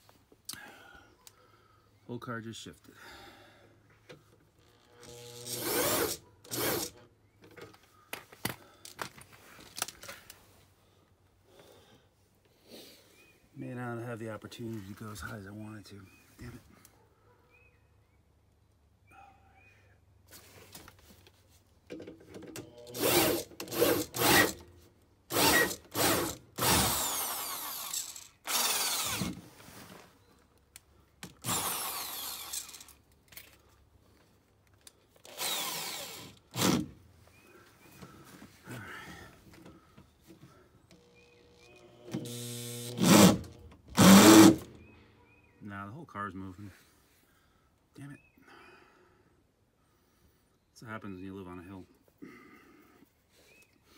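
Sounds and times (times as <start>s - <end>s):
power drill bursts: 5.0s - 7.0s, 22.7s - 24.7s, 25.3s - 29.4s, 31.4s - 33.0s, 35.3s - 36.9s, 40.9s - 44.7s.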